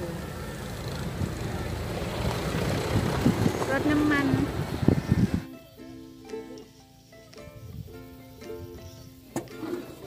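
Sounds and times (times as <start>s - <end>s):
vehicle engine rumbling: 0.0s - 10.0s
wind on microphone: 2.4s - 5.5s.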